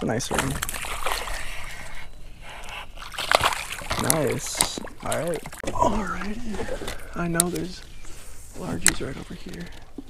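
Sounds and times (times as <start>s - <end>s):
fish splashing in water: 0.2s - 7.7s.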